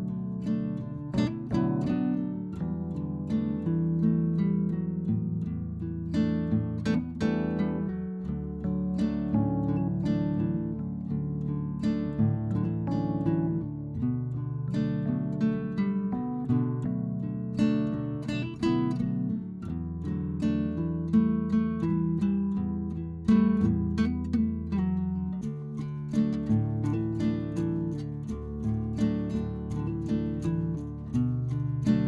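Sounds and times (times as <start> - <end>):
acoustic guitar music: 0.0 - 32.0.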